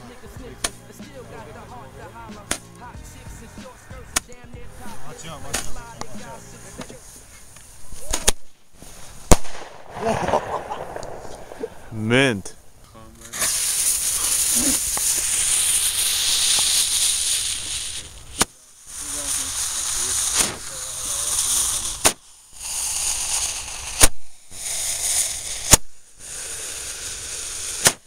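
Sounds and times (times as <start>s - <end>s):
firework pops: 0.0s - 1.4s, 2.3s - 11.9s, 13.1s - 28.0s
firework fuse hissing: 0.0s - 28.0s.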